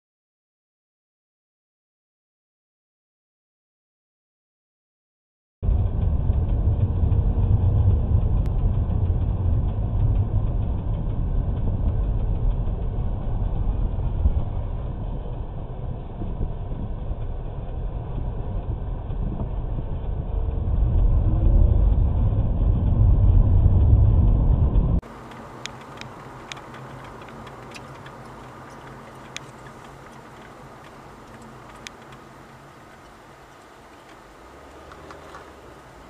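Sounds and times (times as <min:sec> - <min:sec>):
car engine and road noise: 0:05.6 - 0:36.0.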